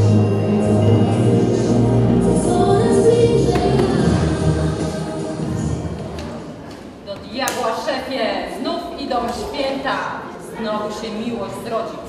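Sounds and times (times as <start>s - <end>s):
song: 2.5s - 5.8s.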